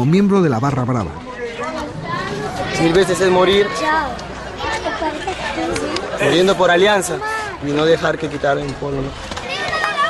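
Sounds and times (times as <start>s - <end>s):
young men talking and calling out: 0.0s - 10.0s.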